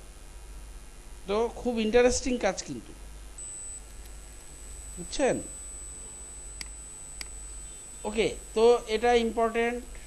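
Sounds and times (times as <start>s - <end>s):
recording hum and hiss: 0.0s - 10.0s
faint high-pitched tone: 4.8s - 9.9s.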